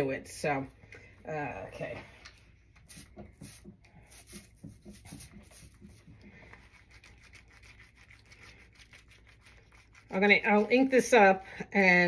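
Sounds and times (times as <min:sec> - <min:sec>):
ink roller rubbing and tapping: 0:03.1 - 0:06.4.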